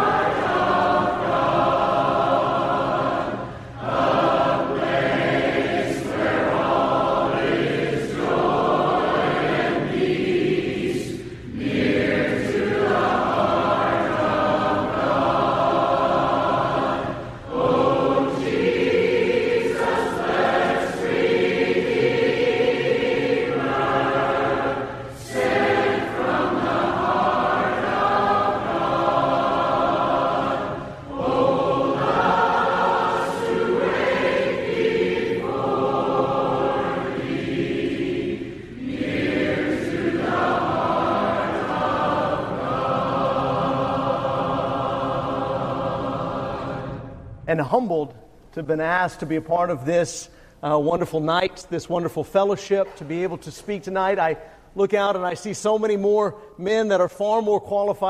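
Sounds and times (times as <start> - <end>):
choir singing a hymn: 0.0 - 47.4.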